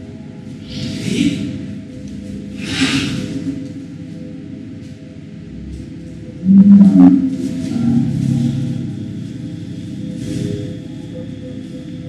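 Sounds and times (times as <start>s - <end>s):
background music with drone: 0.0s - 12.0s.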